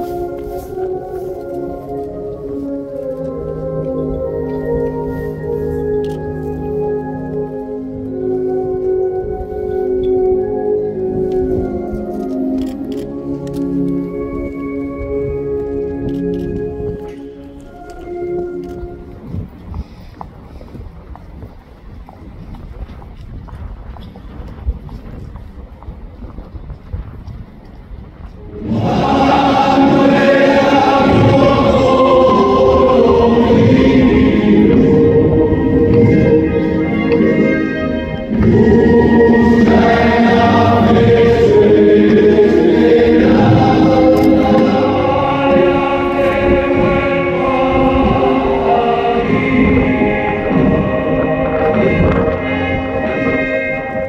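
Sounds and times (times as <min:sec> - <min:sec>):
choir singing slow solemn music: 0:00.0 - 0:19.3, 0:28.4 - 0:54.0
wind rumbling on microphone: 0:00.0 - 0:54.0.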